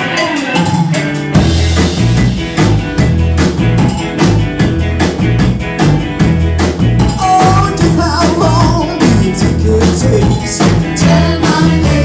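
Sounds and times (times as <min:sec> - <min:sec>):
rock band playing: 0:00.0 - 0:12.0
steady drum beat: 0:00.0 - 0:12.0
keyboard figure: 0:00.1 - 0:12.0.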